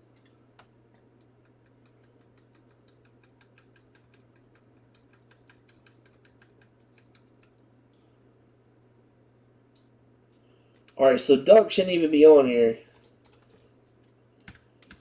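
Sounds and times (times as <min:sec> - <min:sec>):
low steady hum: 0:00.0 - 0:15.0
computer keyboard typing: 0:00.2 - 0:07.6, 0:12.9 - 0:15.0.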